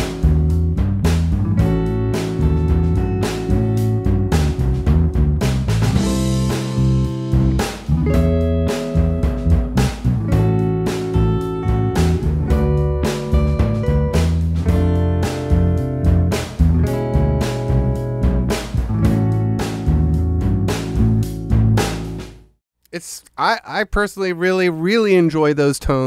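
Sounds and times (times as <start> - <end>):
clean electric guitar: 0.0 - 22.2
drum beat: 0.0 - 22.4
electric bass: 0.0 - 22.5.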